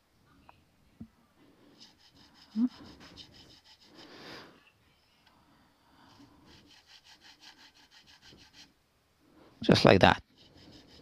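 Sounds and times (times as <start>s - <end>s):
file rasping in nut slot: 1.8s - 4.0s, 6.1s - 8.7s, 10.2s - 11.0s.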